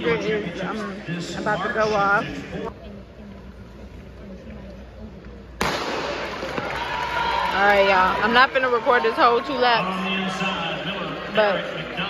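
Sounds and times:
crowd noise: 0.0 - 12.0
murmur of spectators: 0.0 - 12.0.

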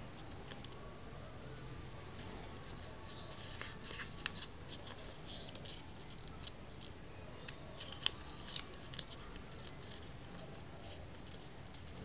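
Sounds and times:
paper being folded and creased: 2.6 - 12.0.

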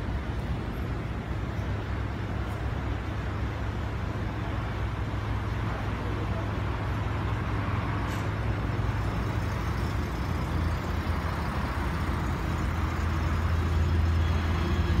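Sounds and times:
vehicle engines idling: 0.0 - 15.0.

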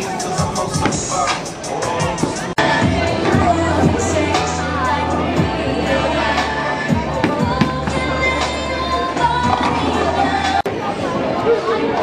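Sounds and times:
background music over speakers: 0.0 - 10.7.

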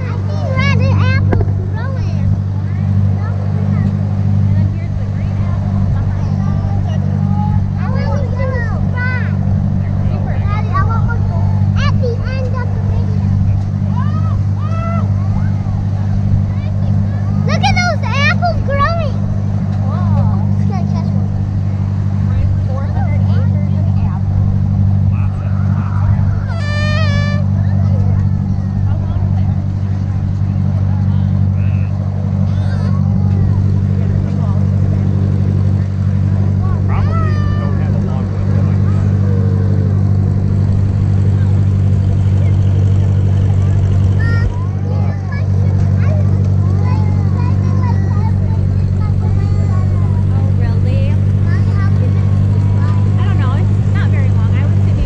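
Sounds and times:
tractor engine droning: 0.0 - 55.0
high voices calling out: 11.1 - 22.3, 24.0 - 29.8, 30.7 - 55.0.

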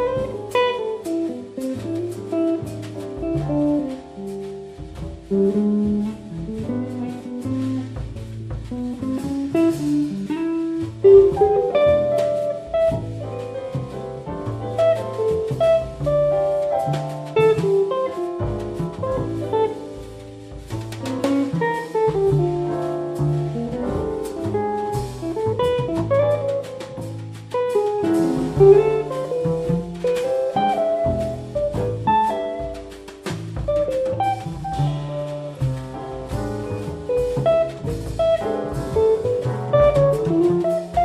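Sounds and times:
electric guitar melody: 0.0 - 41.0
light drumming: 0.0 - 41.0
piano: 0.0 - 41.0
walking bass line: 0.0 - 41.0.

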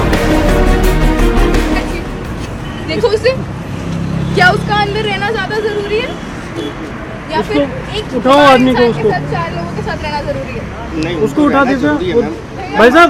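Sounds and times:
street traffic rumble: 0.0 - 13.0
voices talking: 4.2 - 13.0.

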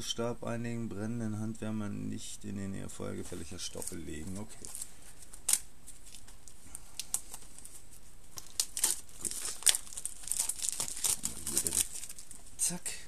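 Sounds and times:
cardboard box crinkling: 8.4 - 12.4.

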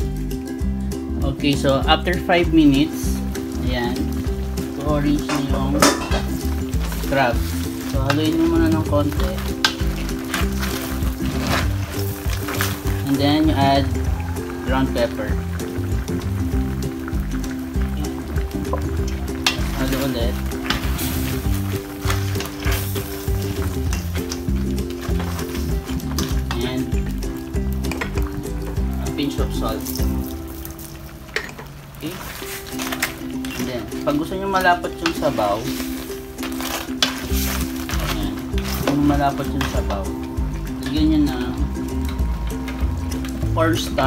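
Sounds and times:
background music with bass notes: 0.0 - 44.0
crabs sizzling in a wok: 2.9 - 43.5
spoon stirring crab shells: 3.3 - 13.2, 17.0 - 28.8, 29.8 - 41.0
spatula scraping metal pan: 20.6 - 26.4.

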